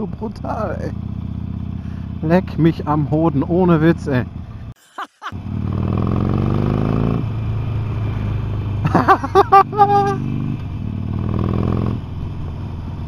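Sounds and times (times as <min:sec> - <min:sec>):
motorcycle engine under throttle: 0:00.0 - 0:04.7, 0:05.4 - 0:13.0.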